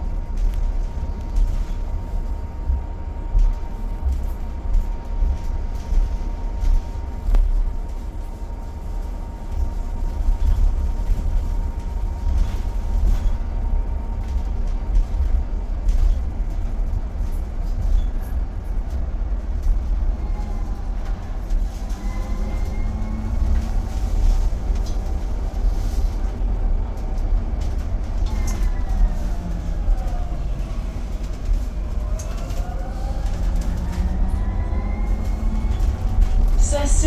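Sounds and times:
low road rumble: 0:00.0 - 0:37.0.

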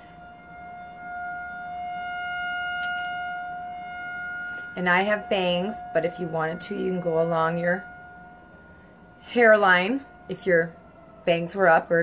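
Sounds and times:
steady tone with overtones: 0:00.0 - 0:12.0.

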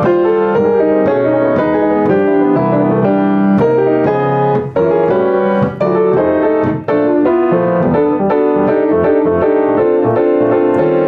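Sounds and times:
jazz piano chords: 0:00.0 - 0:11.0.

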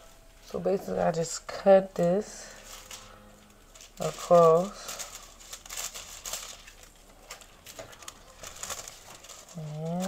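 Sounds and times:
thin sheet crinkling and rustling: 0:02.0 - 0:10.0.

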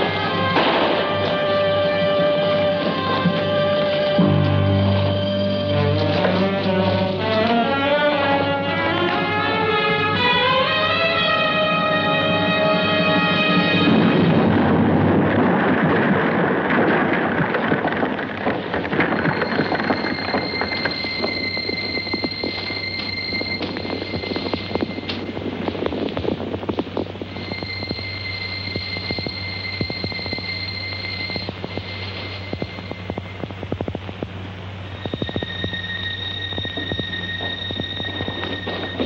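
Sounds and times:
pyrotechnic pops and bangs: 0:00.0 - 0:04.5, 0:13.8 - 0:28.0
film score music: 0:00.0 - 0:33.6
high steady tone: 0:19.1 - 0:34.2, 0:34.8 - 0:39.0.

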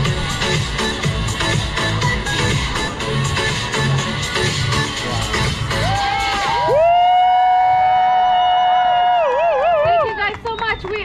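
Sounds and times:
electronic dance music: 0:00.0 - 0:06.9.

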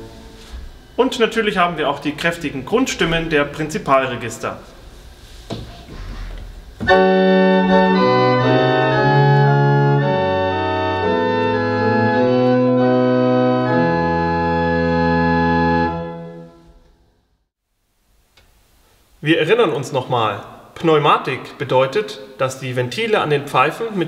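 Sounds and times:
pipe organ chords: 0:00.0 - 0:04.8, 0:06.7 - 0:17.0.

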